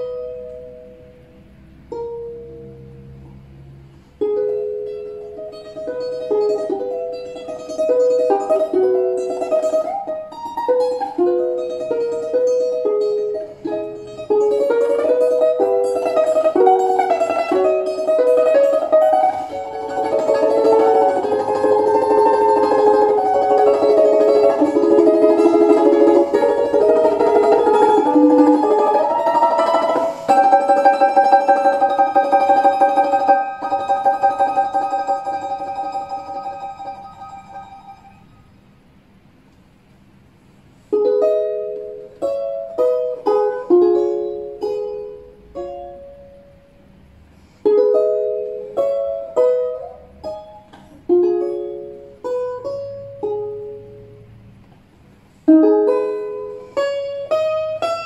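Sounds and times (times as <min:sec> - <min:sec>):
balalaika melody: 0:00.0 - 0:58.0.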